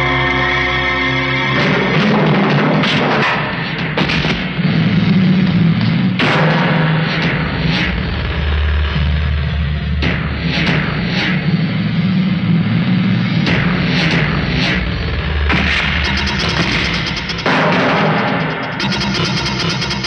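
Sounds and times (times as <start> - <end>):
sustained low drone: 0.0 - 2.9
loud background score: 0.0 - 20.0
sharp hits: 13.5 - 20.0.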